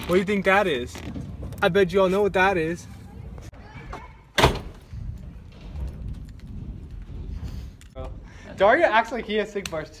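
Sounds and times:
door banging shut: 3.9 - 6.0.

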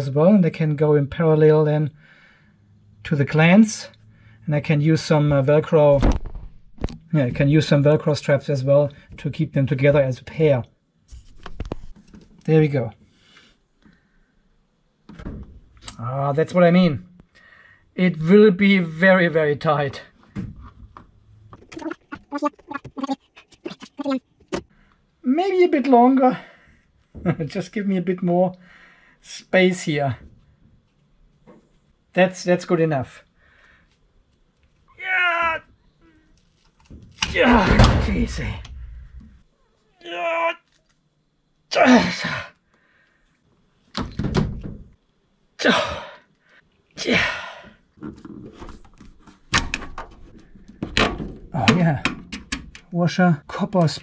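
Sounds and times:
cable rubbing and knocking: 20.4 - 24.7.

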